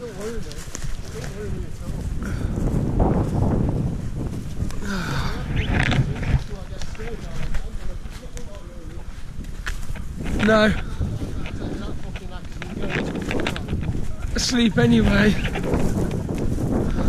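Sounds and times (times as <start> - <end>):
footsteps on frosty leaves: 0.0 - 17.0
wind rumbling on microphone: 0.0 - 17.0.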